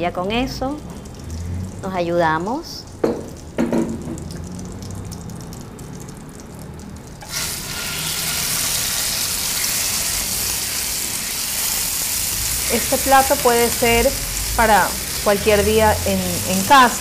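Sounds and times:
chicken sizzling in oil: 4.3 - 17.0.

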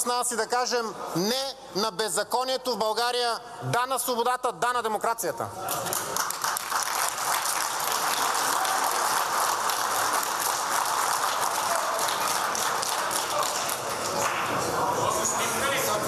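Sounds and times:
people applauding: 5.7 - 15.3.

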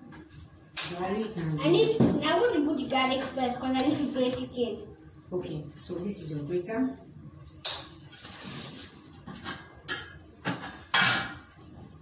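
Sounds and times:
kitchenware clattering against pots: 9.3 - 11.5.

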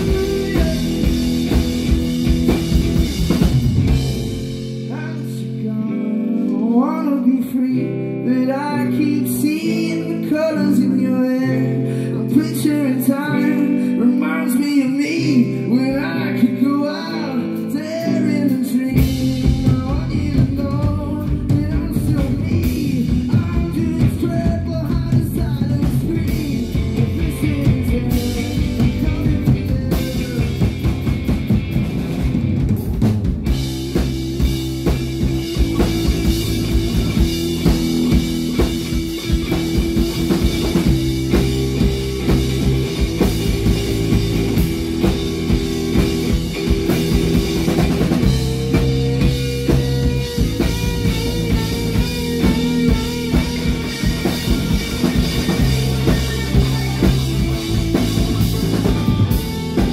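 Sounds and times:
man singing: 0.0 - 1.9, 4.8 - 31.2, 34.8 - 59.9
drum kit with cymbal strikes: 0.0 - 5.0, 19.0 - 59.9
bass guitar: 0.0 - 59.9
electric guitar: 0.0 - 59.9.

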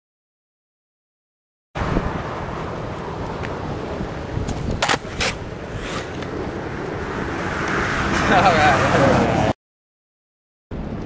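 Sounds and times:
skateboard wheels rolling on concrete: 1.8 - 9.5
wind on microphone: 1.8 - 9.5
board clacking on pavement: 4.4 - 6.4.

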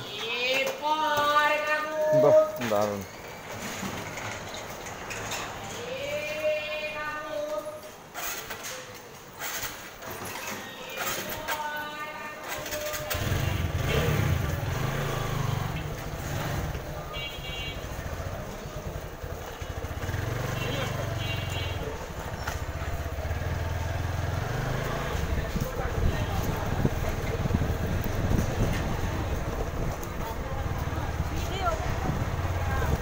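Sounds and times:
street voices: 0.0 - 33.0
motorcycle engine rumbling: 11.3 - 33.0.

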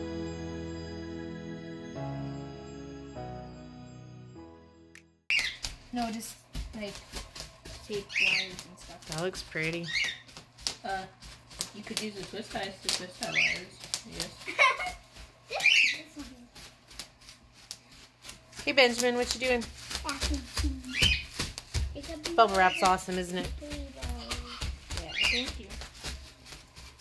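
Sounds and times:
held keyboard chords: 0.0 - 5.2
bubble wrap popping: 5.4 - 27.0.

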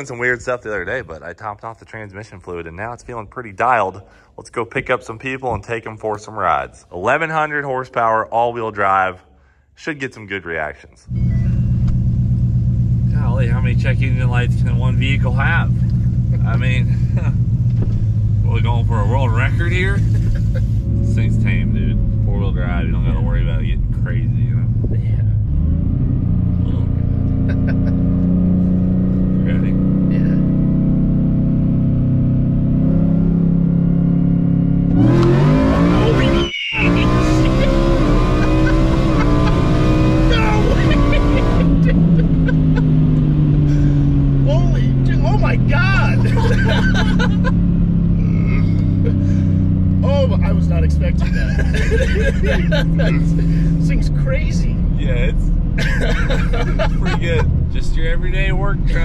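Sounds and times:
truck engine revving with whine: 11.1 - 59.0
passengers laughing: 15.7 - 17.5, 18.8 - 21.0, 27.2 - 28.2, 35.8 - 54.1, 55.0 - 59.0.

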